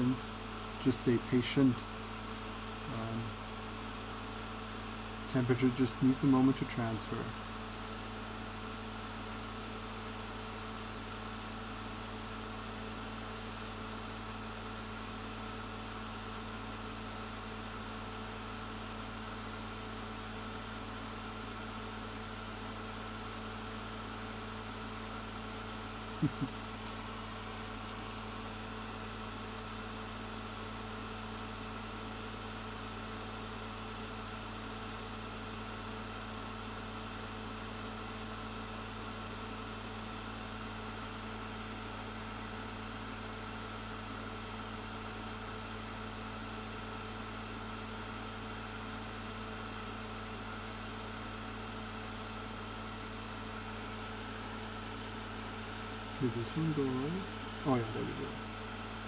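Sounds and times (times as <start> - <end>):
low machine hum: 0.0 - 59.0.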